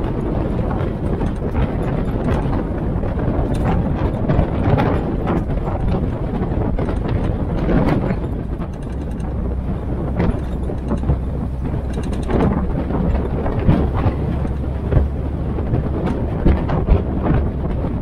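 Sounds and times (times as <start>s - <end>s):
jeep engine running: 0.0s - 18.0s
vehicle rattles and knocks: 0.0s - 18.0s
wind buffeting microphone: 0.0s - 18.0s.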